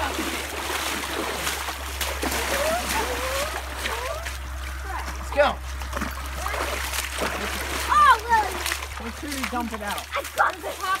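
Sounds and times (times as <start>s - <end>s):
feet splashing through water: 0.0s - 11.0s
children calling out: 2.4s - 5.1s.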